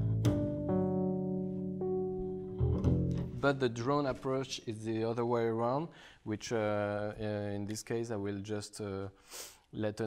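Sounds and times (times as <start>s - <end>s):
plucked double bass: 0.0s - 4.3s.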